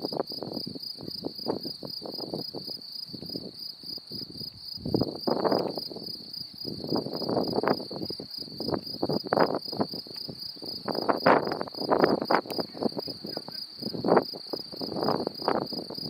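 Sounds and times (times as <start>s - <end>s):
cricket chirping trill: 0.0s - 16.0s.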